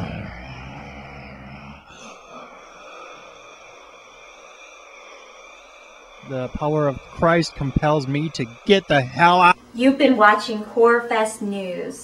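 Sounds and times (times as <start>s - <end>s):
woman growling: 0.0s - 3.3s
faint steady hiss: 1.6s - 12.0s.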